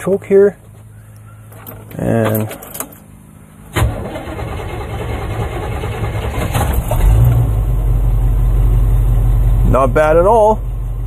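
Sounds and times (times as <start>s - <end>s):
gasoline engine starting and idling: 0.7s - 11.0s.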